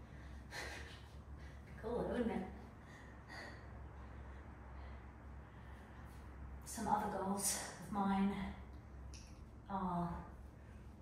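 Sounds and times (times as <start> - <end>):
woman's effortful breath: 2.8 - 6.3.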